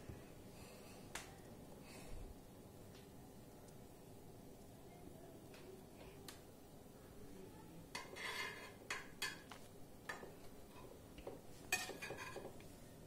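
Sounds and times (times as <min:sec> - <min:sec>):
cutlery clinking on plate: 0:08.0 - 0:10.9, 0:11.7 - 0:12.6.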